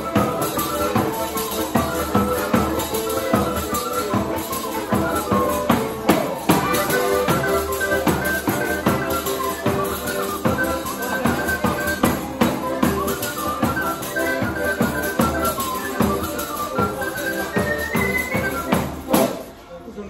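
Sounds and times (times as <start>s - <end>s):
accordion folk tune: 0.0s - 20.0s.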